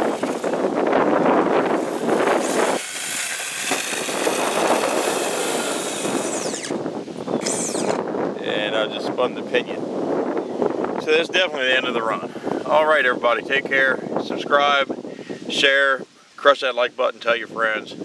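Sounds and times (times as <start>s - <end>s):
electric motor whining: 0.0s - 8.3s.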